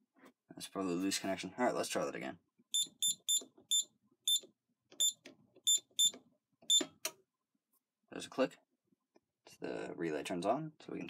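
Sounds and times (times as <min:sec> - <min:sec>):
short high-pitched keypad beeps: 0:02.8 - 0:04.4, 0:05.0 - 0:06.9.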